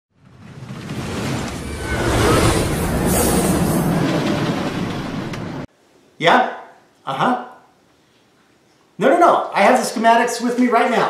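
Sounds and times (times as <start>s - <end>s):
roller coaster running on track: 0.2s - 5.7s.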